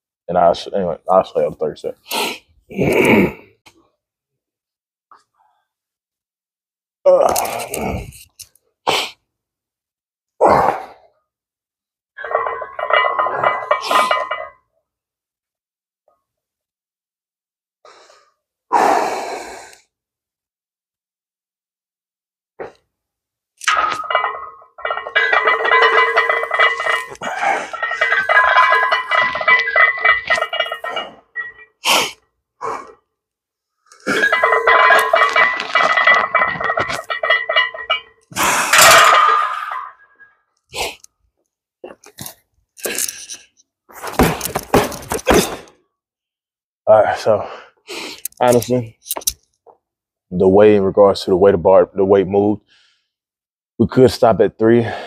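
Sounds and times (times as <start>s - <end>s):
barbell and plates clinking: 12.2s - 14.6s, 23.6s - 31.8s, 34.0s - 40.2s.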